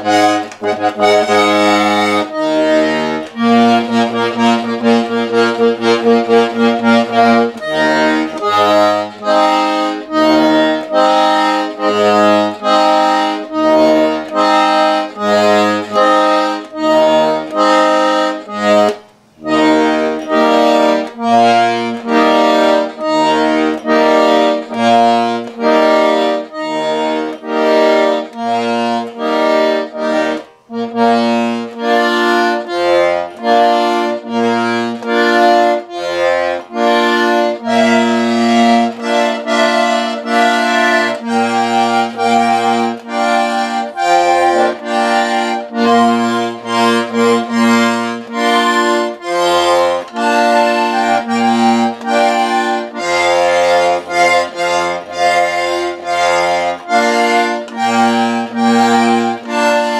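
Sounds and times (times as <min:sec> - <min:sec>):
accordion playing chords: 0:00.0 - 0:59.9.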